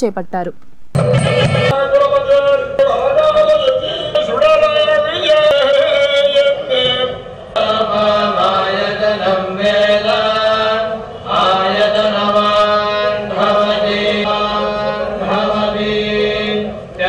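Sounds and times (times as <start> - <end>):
steady low tone: 0.0 - 1.0
men chanting in unison: 1.8 - 17.0.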